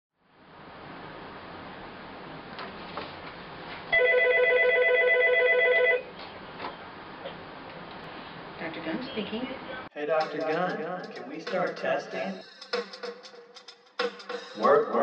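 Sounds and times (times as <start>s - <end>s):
telephone ringing: 3.9s - 6.1s.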